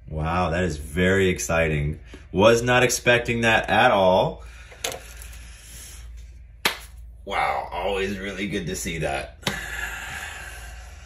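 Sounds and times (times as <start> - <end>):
low room hum: 0.0 - 11.0
sharp hand clap: 6.6 - 7.0.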